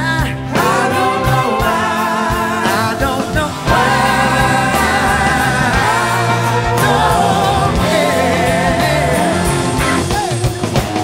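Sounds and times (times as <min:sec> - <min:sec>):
person singing: 0:00.0 - 0:10.5
blues rock band playing: 0:00.0 - 0:11.0.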